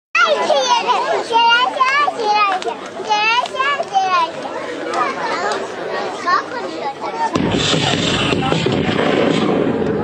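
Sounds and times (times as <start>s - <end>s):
children calling and chattering: 0.2s - 10.0s.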